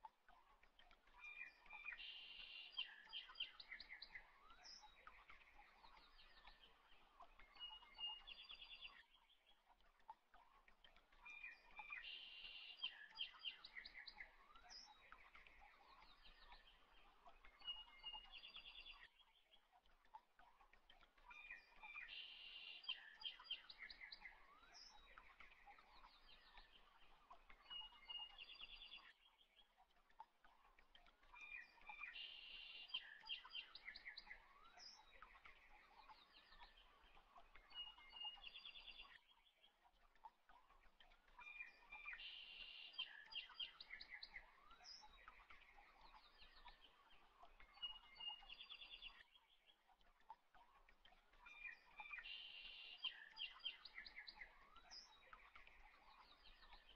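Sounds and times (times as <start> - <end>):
birds chirping and trilling: 11.1 - 56.9.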